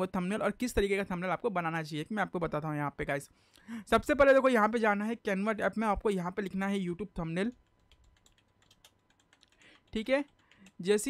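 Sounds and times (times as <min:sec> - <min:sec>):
computer keyboard typing: 0:07.4 - 0:11.0.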